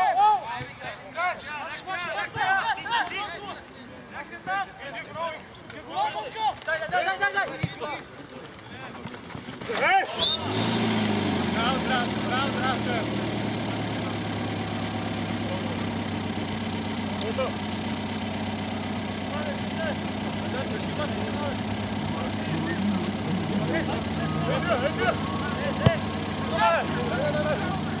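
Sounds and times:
distant shouting voices: 9.8 - 28.0
engine hum: 10.2 - 28.0.

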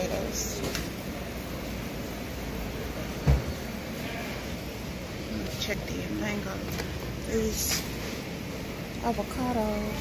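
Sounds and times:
supermarket background noise: 0.0 - 10.0.

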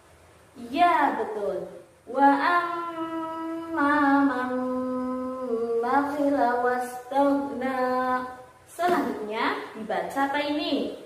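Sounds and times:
woman chanting a verse: 0.6 - 11.0.

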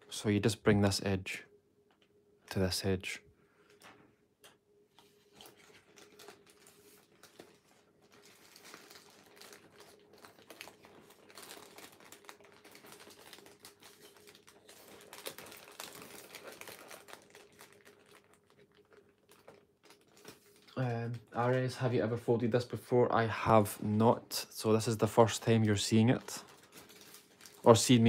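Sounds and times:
paper rustling and crinkling: 4.9 - 20.8, 25.6 - 28.0
paper crackles and clicks: 4.9 - 20.9, 25.3 - 28.0.

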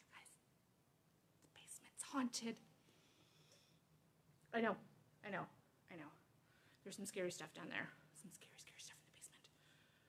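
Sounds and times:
woman whispering faintly: 0.0 - 0.4, 1.5 - 2.6, 8.2 - 9.6.

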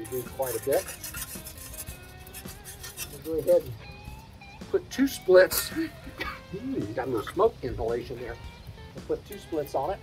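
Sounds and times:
metal tool scraping coals: 0.0 - 10.0.

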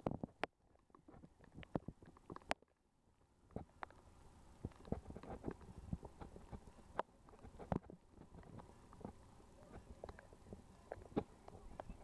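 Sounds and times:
irregular soft clicks and knocks: 0.0 - 12.0.

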